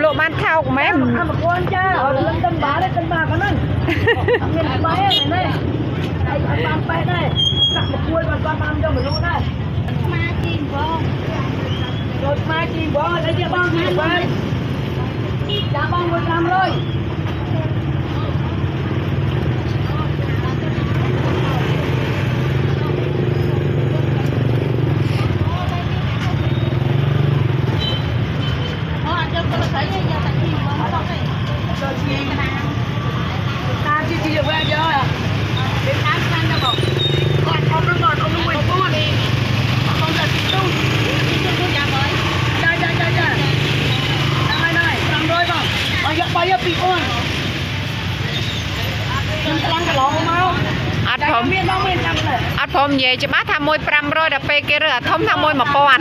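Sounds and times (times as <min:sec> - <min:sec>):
people talking: 0:00.0 - 0:27.0, 0:28.9 - 0:47.4, 0:48.8 - 0:56.0
low rumble of traffic: 0:00.0 - 0:56.0.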